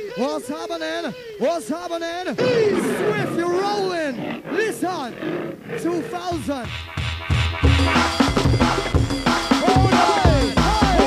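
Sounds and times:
sampled vocal cries: 0.0 - 6.8
deep bass and drums: 6.4 - 11.0.

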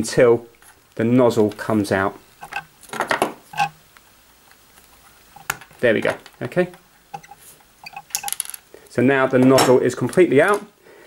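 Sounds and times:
pliers and small parts clinking: 2.4 - 8.7.

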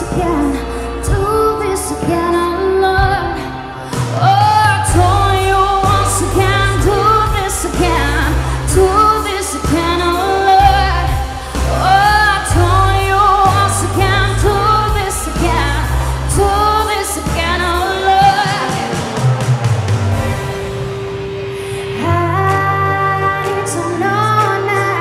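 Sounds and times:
woman singing pop song: 0.0 - 19.4, 21.6 - 25.0
backing music with bass and beat: 0.0 - 25.0.

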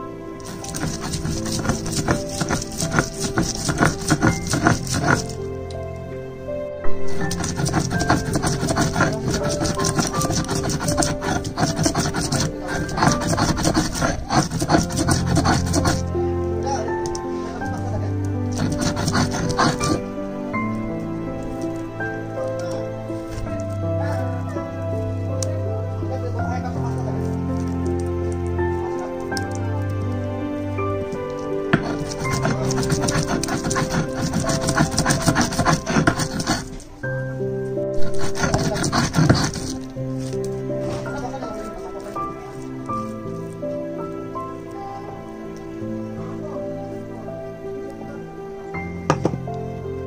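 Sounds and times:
background music: 0.0 - 50.0
stone grinding on stone slab: 0.4 - 5.4, 6.9 - 16.2, 18.4 - 20.1, 30.9 - 36.9, 38.0 - 40.4.

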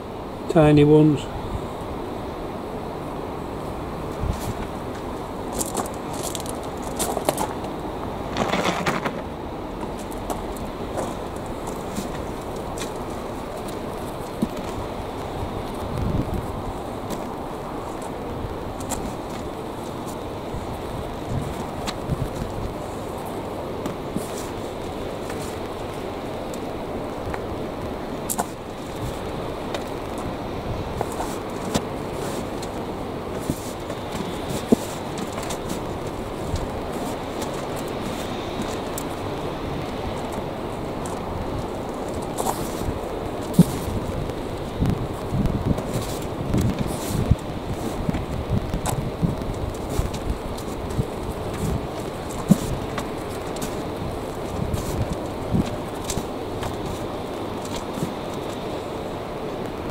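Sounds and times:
steady background noise: 0.0 - 59.9
compost rustling and crumbling: 3.6 - 59.9.

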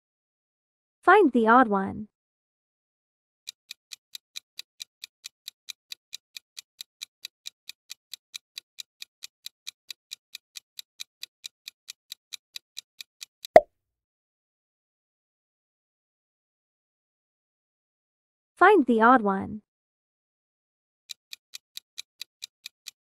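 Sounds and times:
quick timer ticks: 3.5 - 13.6, 21.1 - 23.0.

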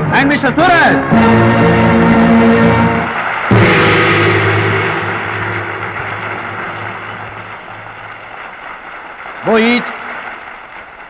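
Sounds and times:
large gong ringing: 3.5 - 7.4.

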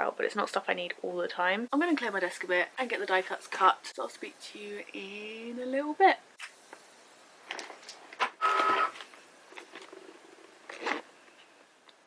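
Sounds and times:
short squeak: 8.4 - 9.0.

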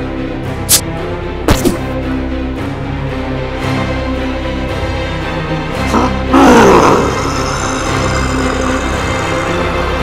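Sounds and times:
dramatic background music: 0.0 - 10.0
monster roar: 5.9 - 10.0.

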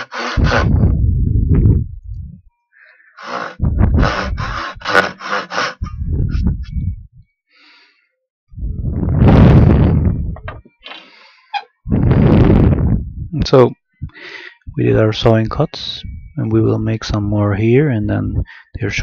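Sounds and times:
back saw cutting wood: 0.0 - 0.8, 3.2 - 5.9.

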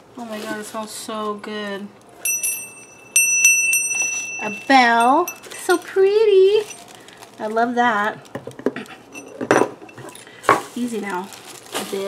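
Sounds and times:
brass hand bell ringing: 2.2 - 5.7.

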